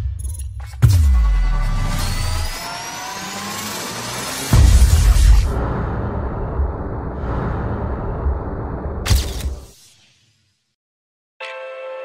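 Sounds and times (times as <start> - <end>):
synthesized rising tones: 1.1 - 9.0
heavy low hit: 4.5 - 9.1
deep boom: 4.6 - 9.2.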